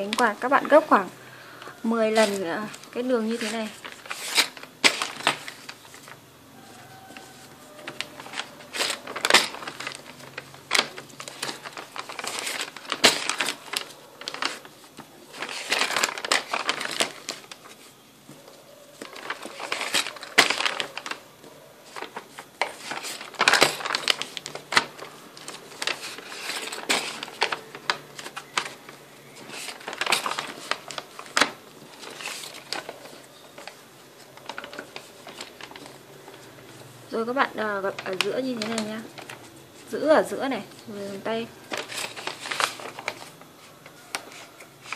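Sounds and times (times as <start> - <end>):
paper rustling and creasing: 0.0 - 44.9.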